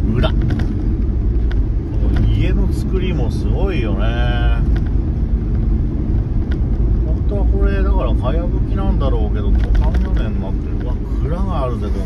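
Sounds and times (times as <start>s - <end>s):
engine and tyre rumble: 0.0s - 12.0s.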